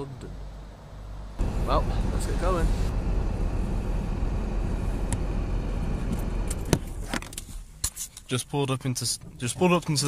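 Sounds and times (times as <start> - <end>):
car road rumble from inside: 1.0 - 7.7.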